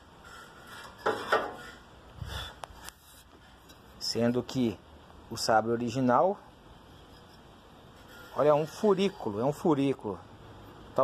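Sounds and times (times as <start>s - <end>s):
metal bar scraping wood: 0.0s - 4.0s, 7.0s - 9.6s.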